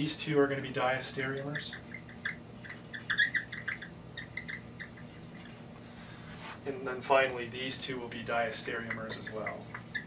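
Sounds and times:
marker squeaking on whiteboard: 0:01.0 - 0:05.8, 0:08.5 - 0:10.0.

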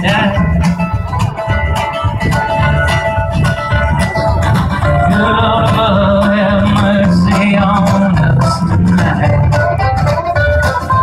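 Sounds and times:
guitar: 0:00.0 - 0:11.0
live band instrumental music: 0:00.0 - 0:11.0
pulsing bass line: 0:00.0 - 0:11.0.

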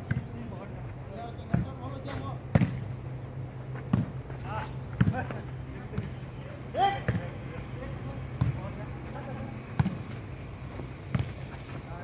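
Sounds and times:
player shouting: 0:06.7 - 0:07.1.

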